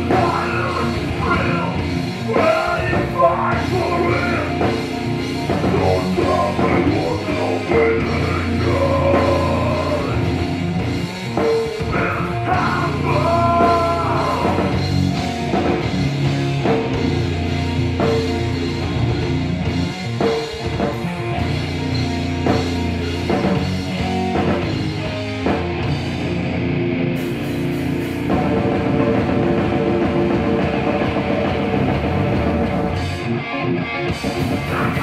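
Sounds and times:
bass guitar: 0.0 - 35.0
distorted electric guitars: 0.0 - 35.0
drum kit: 0.0 - 35.0.

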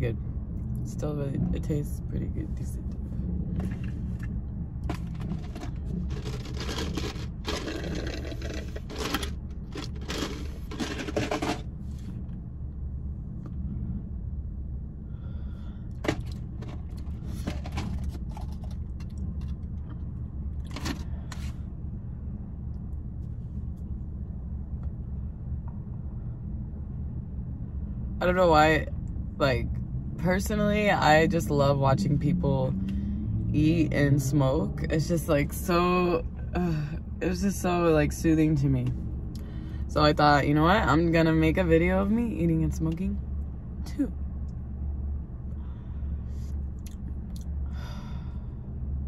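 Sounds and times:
low rumble in car cabin: 0.0 - 49.0.

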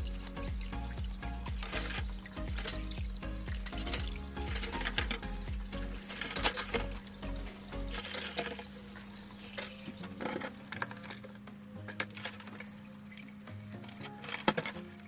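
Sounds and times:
background music: 0.0 - 15.0
splashes and clatters: 0.0 - 15.0.

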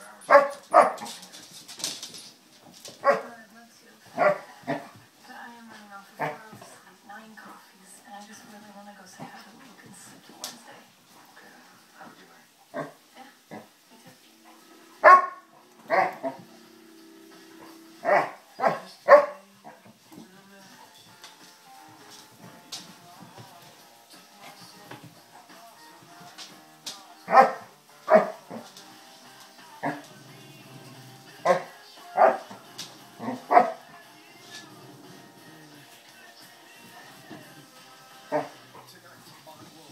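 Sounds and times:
dogs barking: 0.0 - 1.3, 3.0 - 3.3, 4.1 - 4.9, 15.0 - 16.6, 17.6 - 19.9, 27.2 - 28.8, 31.4 - 32.6, 33.2 - 33.9, 38.3 - 38.8
faint music: 0.0 - 39.9.

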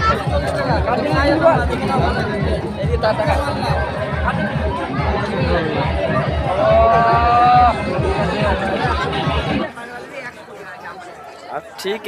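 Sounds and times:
man talking: 0.0 - 5.8, 11.5 - 12.0
fairground chatter: 0.0 - 12.0.

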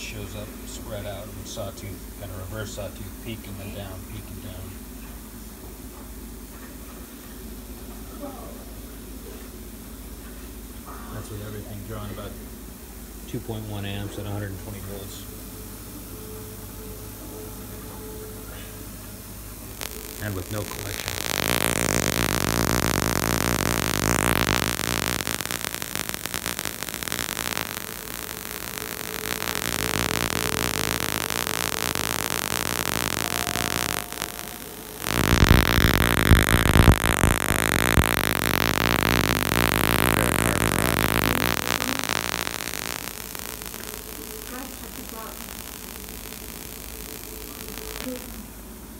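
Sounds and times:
tesla coil spark buzz: 19.7 - 48.6.

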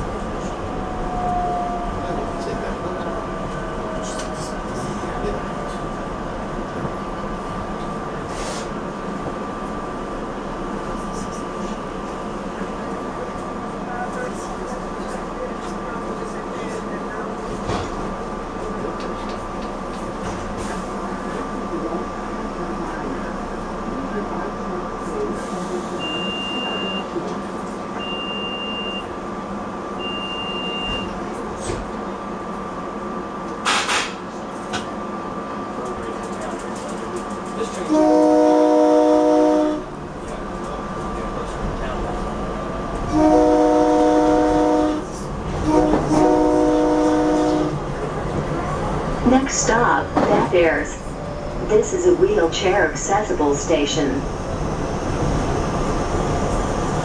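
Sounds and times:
train electrical hum: 0.0 - 57.0
train horn blasts: 37.8 - 39.9, 43.0 - 47.8.

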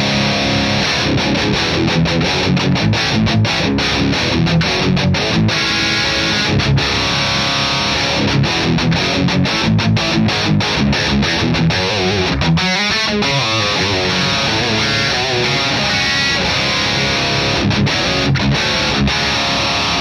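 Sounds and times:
distorted electric guitar riff: 0.0 - 20.0.

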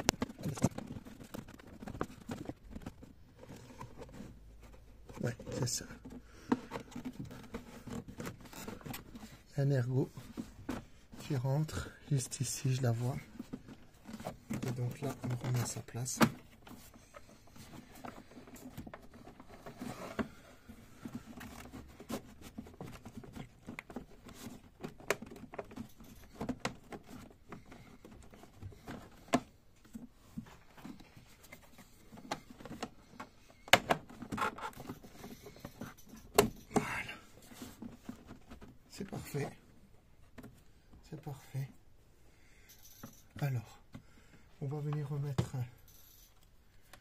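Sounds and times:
plastic parts clicking and knocking: 0.0 - 41.4.

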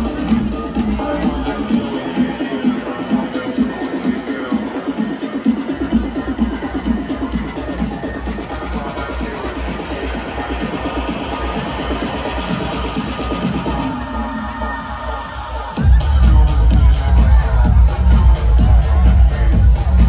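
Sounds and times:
electronic dance music with bass beat: 0.0 - 20.0.

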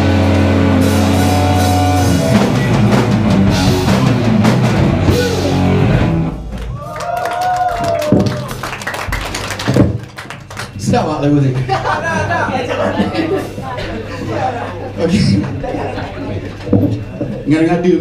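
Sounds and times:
heavy metal band playing live: 0.0 - 6.6
stage sounds: 0.0 - 18.0.

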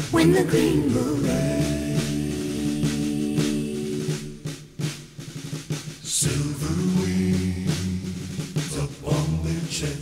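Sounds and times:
snare drum roll: 0.0 - 10.0.

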